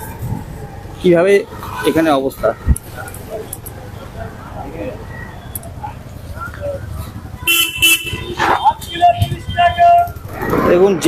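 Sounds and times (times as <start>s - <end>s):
low street rumble: 0.0s - 11.0s
motorcycle horn beeping: 7.3s - 10.2s.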